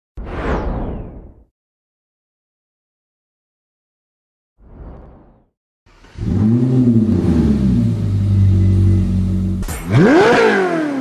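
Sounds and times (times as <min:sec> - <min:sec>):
whoosh sound effect: 0:00.2 - 0:01.5.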